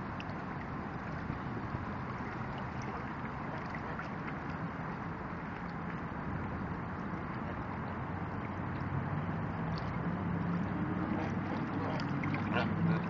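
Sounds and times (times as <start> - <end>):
low engine hum: 0.0 - 13.0
water: 0.0 - 13.0
wind: 0.0 - 13.0.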